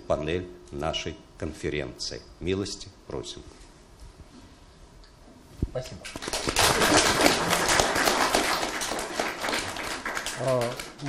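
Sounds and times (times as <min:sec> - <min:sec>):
audience applauding: 0:06.1 - 0:11.0.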